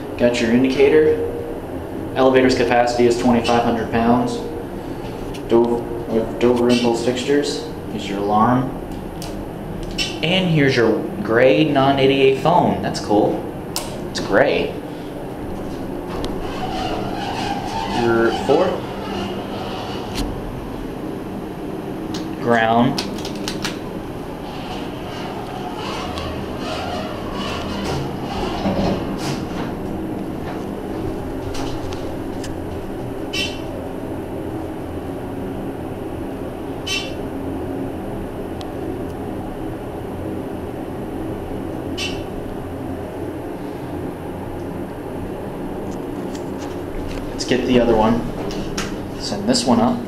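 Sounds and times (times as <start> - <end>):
elevator hum and rumble: 0.0 - 50.0
elevator rattling: 0.0 - 50.0.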